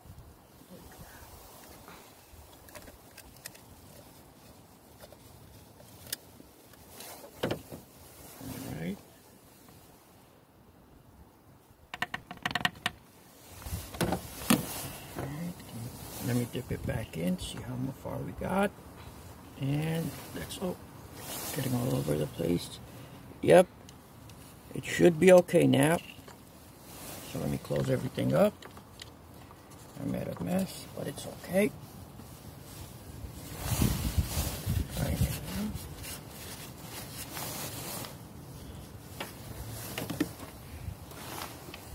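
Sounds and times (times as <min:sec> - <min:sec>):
paper towel rustling and rubbing: 0:03.5 - 0:09.9, 0:13.3 - 0:22.8, 0:24.4 - 0:28.5, 0:29.7 - 0:41.9
handling noise: 0:13.6 - 0:16.4, 0:39.0 - 0:41.9.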